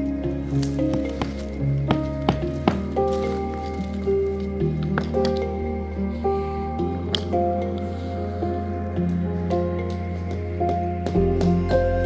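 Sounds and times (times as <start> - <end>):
background music of held notes: 0.0 - 12.0.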